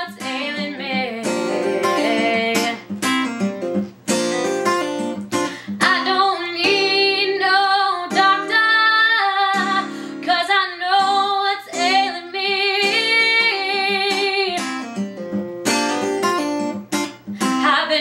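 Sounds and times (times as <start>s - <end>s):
woman singing blues: 0.0s - 3.0s, 4.1s - 14.9s, 17.4s - 18.0s
acoustic guitar: 0.0s - 18.0s.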